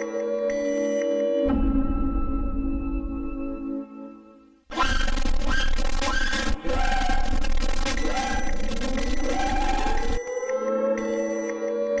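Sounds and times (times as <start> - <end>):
harsh distorted warbling effect: 4.7 - 10.2.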